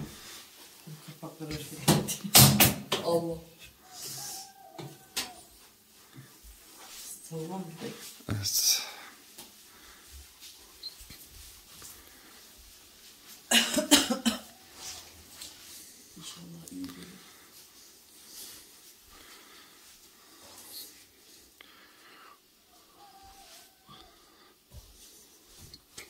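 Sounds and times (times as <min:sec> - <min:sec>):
harsh coughing: 0:13.5 - 0:14.6.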